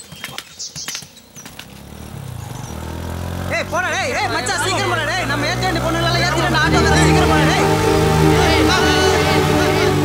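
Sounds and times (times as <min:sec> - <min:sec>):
auto-rickshaw engine drone: 0:01.4 - 0:10.0.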